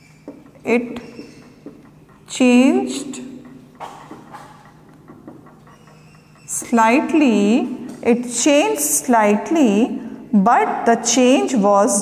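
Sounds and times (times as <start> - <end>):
marker scraping on whiteboard: 0.0 - 7.3.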